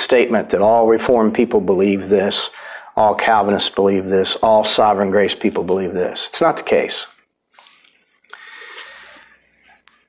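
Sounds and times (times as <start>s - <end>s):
man drawing a breath: 8.3s - 9.5s.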